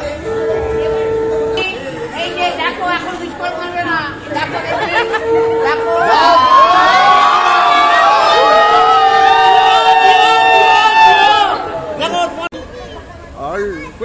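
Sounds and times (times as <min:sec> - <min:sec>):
crowd chattering and cheering: 0:00.0 - 0:14.0
conch shell note: 0:00.2 - 0:02.2, 0:05.0 - 0:06.5
women ululating: 0:05.9 - 0:12.0.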